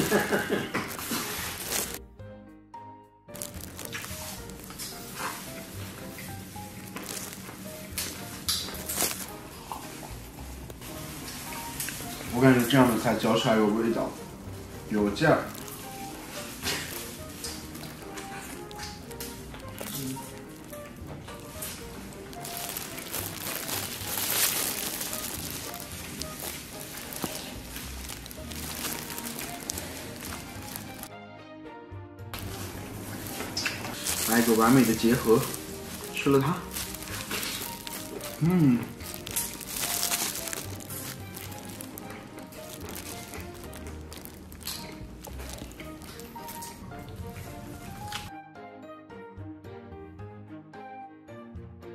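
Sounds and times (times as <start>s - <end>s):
light background music: 0.0s - 51.9s
chewing and mouth smacks: 6.9s - 10.2s, 16.6s - 31.1s, 35.5s - 47.5s.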